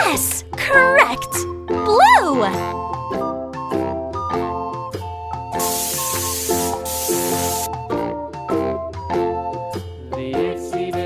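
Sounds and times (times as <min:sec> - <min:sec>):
bouncy children's music: 0:00.0 - 0:11.0
aerosol spray can hiss: 0:05.6 - 0:07.7.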